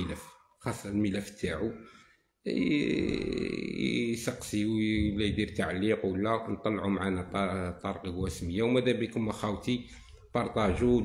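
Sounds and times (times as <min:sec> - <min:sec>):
man speaking: 0:00.0 - 0:11.0
man's creaky vocal sound: 0:02.4 - 0:04.2.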